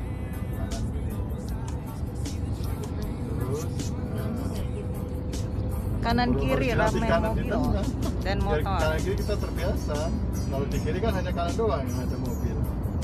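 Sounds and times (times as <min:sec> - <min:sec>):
car engine and road rumble: 0:00.0 - 0:13.0
faint music: 0:00.0 - 0:13.0.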